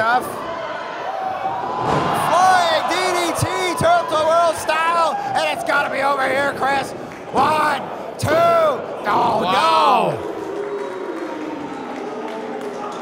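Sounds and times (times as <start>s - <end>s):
loud shouting voices: 0.6s - 11.9s.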